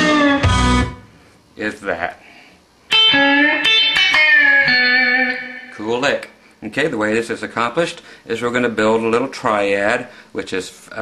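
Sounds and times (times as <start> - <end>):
electric guitar lead lick: 0.0 - 1.1, 2.9 - 5.9.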